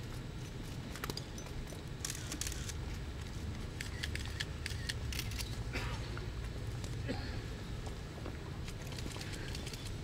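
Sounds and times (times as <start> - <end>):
low background rumble: 0.0 - 10.0.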